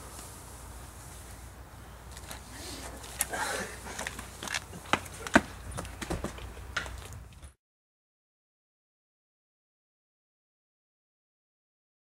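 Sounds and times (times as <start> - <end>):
footsteps: 2.1 - 7.6.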